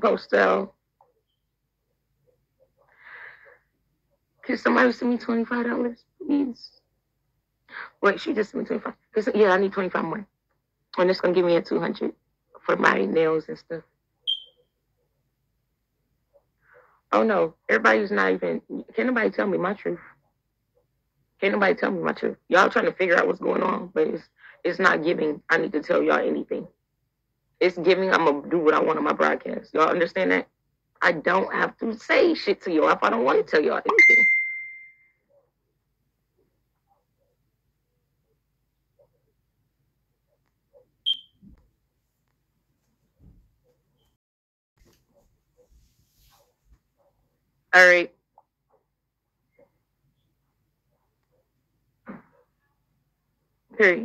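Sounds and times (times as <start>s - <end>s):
high-pitched electronic beep: 14.3s - 14.5s, 33.9s - 35.1s, 41.1s - 41.4s.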